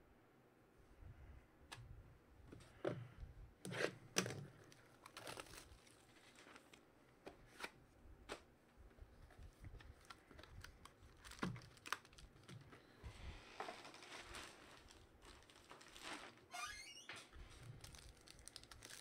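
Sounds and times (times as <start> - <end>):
foil wrapper rustling: 4.2 - 6.8, 9.3 - 12.8, 13.7 - 16.5, 17.4 - 19.0.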